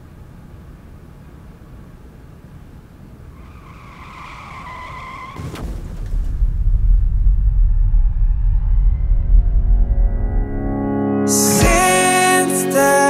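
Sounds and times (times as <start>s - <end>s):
high squeal: 3.4s - 5.5s, 7.8s - 10.7s
sharp impact: 5.4s - 10.9s
loud low rumble: 5.6s - 11.2s.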